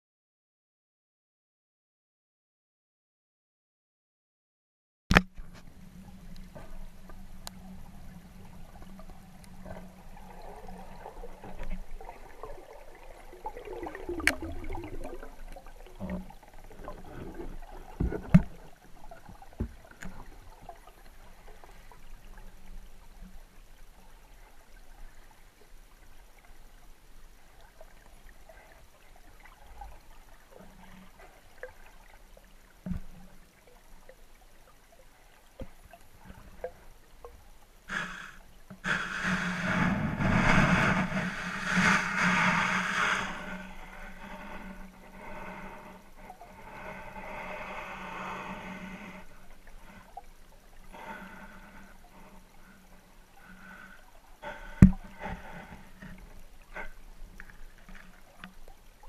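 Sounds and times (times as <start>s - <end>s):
small underwater clicks: 5.1s - 7.7s, 14.2s - 14.6s
underwater water noise: 5.1s - 59.0s
rushing swirl of water: 10.0s - 18.0s, 37.9s - 52.3s.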